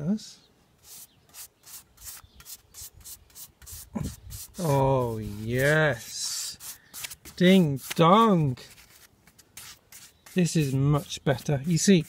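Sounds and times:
paintbrush scrubbing wood: 0.8 - 12.0.

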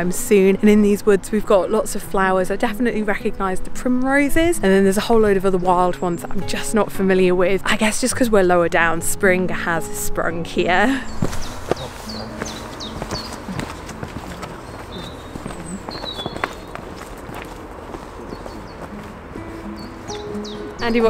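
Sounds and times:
soft background music: 0.0 - 21.0
footsteps on dirt path: 10.9 - 21.0
bird chirps: 11.1 - 17.0, 18.2 - 19.0, 19.6 - 21.0.

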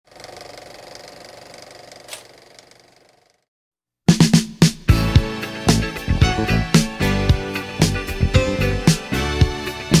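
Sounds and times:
film projector clatter: 0.1 - 3.4.

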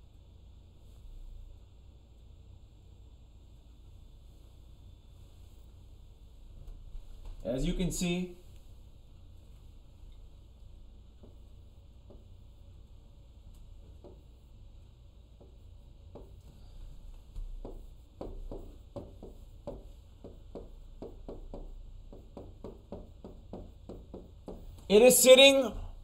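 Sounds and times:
pen tapping on a screen: 13.9 - 14.3, 15.4 - 16.5, 17.4 - 24.9.

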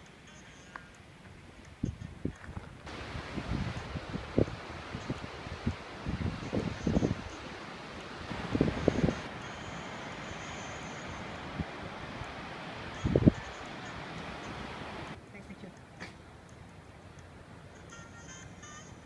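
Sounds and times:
hiss of wind: 0.0 - 19.0
wind buffeting microphone: 1.7 - 15.2
surf: 2.9 - 15.2.

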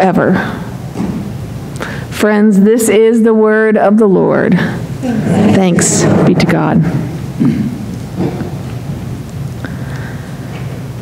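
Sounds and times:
low rumble and hiss of room: 0.0 - 11.0
faint murmurs: 5.0 - 7.8.

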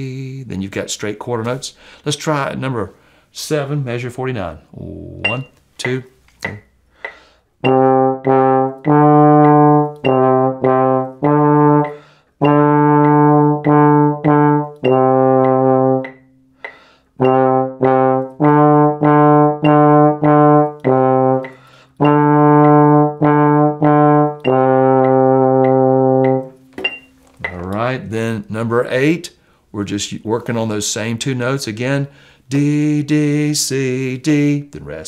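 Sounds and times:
trombone playing: 7.6 - 16.6, 17.2 - 26.8.

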